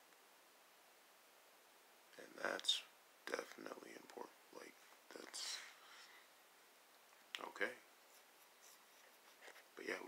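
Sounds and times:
man talking: 0:02.2 - 0:05.8, 0:07.3 - 0:07.9, 0:09.8 - 0:10.0
soft scratchy rustling: 0:03.3 - 0:10.0.

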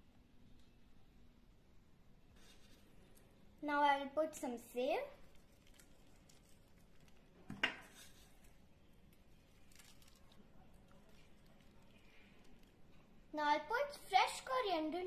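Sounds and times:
faint handling sounds: 0:02.2 - 0:03.4, 0:05.2 - 0:13.2.

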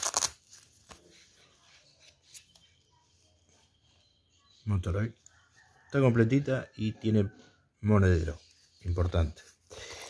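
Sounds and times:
wallet crackling rustle: 0:00.0 - 0:02.7.

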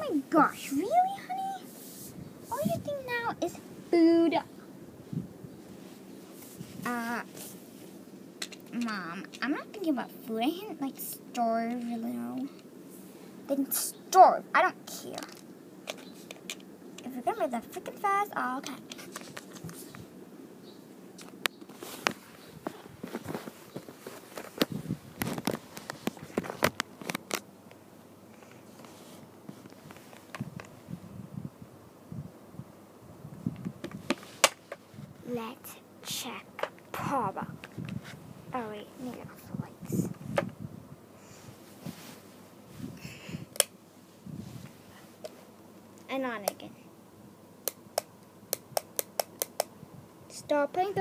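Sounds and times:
handling and rustling: 0:18.7 - 0:20.1, 0:21.3 - 0:27.4, 0:41.4 - 0:43.0.

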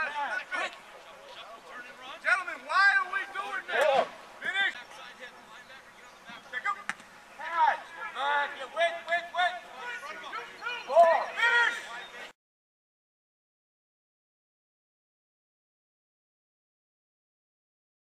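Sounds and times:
people shouting: 0:07.4 - 0:12.1.

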